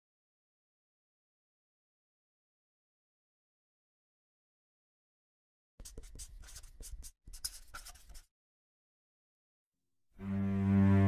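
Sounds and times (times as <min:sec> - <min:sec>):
pen scratching on paper: 0:05.8 - 0:08.3.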